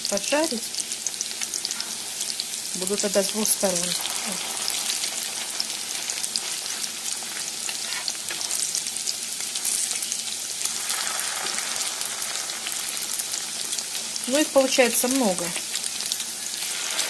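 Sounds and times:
patties sizzling in oil: 0.0 - 17.0.

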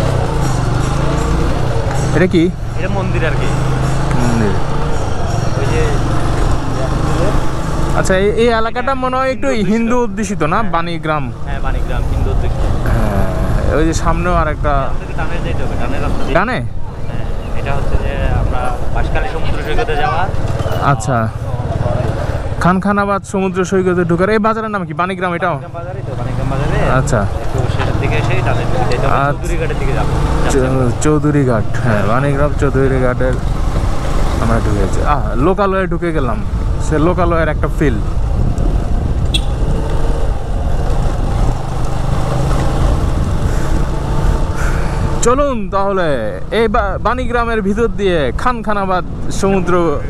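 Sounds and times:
vehicle engine rumbling: 0.0 - 50.0
person talking: 2.0 - 4.7
wind rushing over microphone: 33.4 - 45.9.

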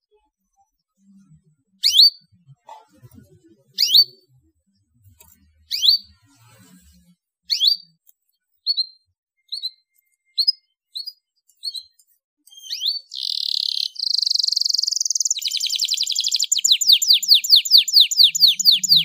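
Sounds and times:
canary chirping: 0.4 - 6.9, 7.5 - 19.0.

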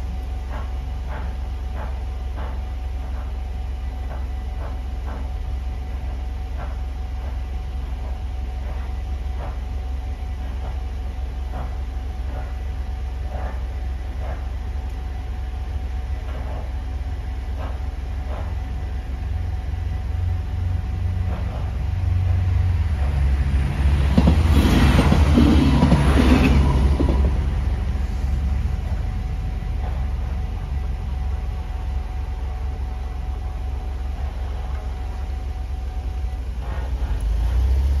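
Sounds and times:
diesel train rumbling past: 0.0 - 38.0.

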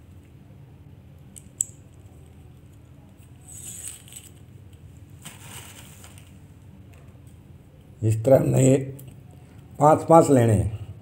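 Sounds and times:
plastic bag crinkling: 5.2 - 6.4.

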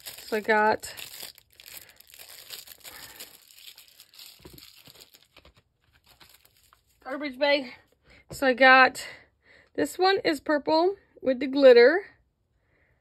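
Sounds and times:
plastic packaging crinkling: 0.0 - 7.2.

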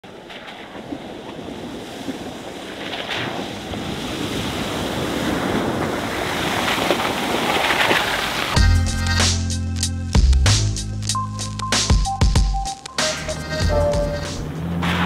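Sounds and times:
tyres splashing through water: 0.0 - 8.6, 14.4 - 15.0.

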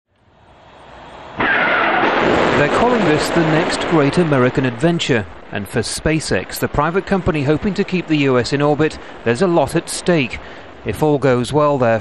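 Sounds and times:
rocket launch roar: 0.3 - 11.0.

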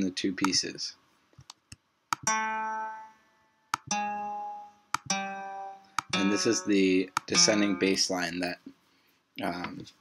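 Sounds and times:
plucked acoustic guitar notes: 2.2 - 3.1, 3.9 - 8.1.

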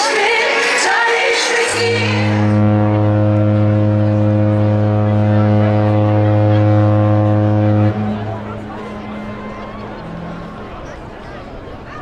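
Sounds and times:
deep ship horn blast: 1.6 - 11.8.

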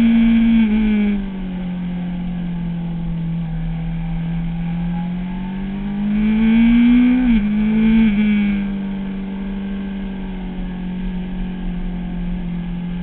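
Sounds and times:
motorcycle engine at high revs: 0.0 - 13.0.

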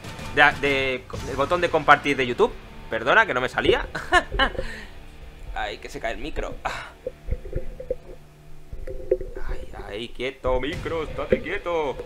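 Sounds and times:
microphone handling knocks and rubbing: 3.6 - 11.6.

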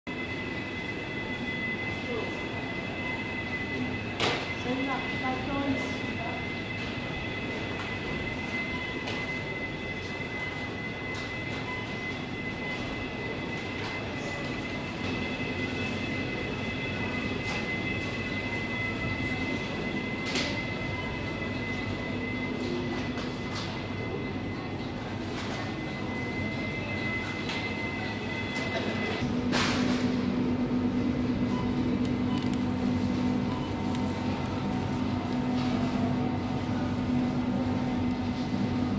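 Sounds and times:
broad room hum: 0.1 - 38.9.

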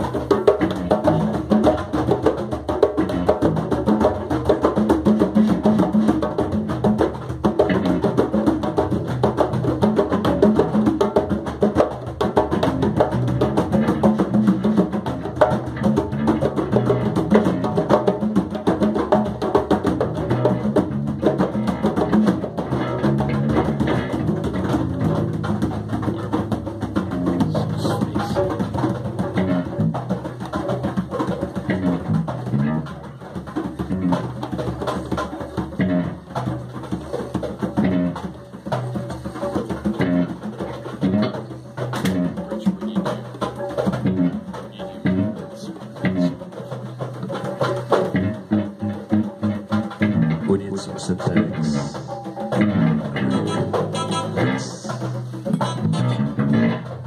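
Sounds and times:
congas played by hand: 0.0 - 57.0
electric guitar playing: 51.2 - 56.8.

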